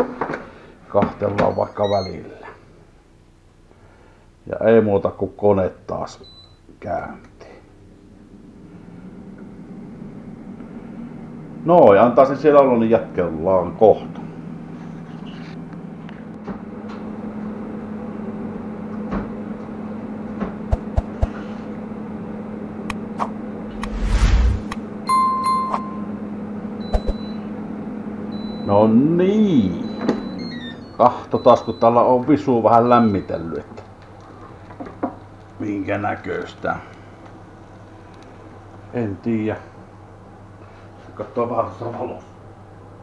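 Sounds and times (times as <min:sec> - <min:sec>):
air fryer fan humming: 0:07.7 - 0:14.9, 0:15.6 - 0:24.2, 0:24.8 - 0:43.0.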